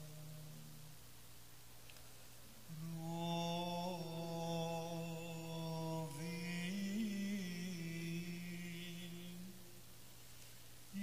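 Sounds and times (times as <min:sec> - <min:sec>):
man chanting: 0:00.0 - 0:00.9, 0:02.7 - 0:09.8.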